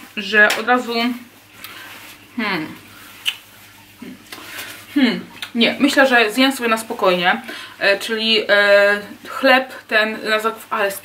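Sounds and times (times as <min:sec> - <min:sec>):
woman's soft voice sounds: 0:02.4 - 0:02.9, 0:04.9 - 0:05.8.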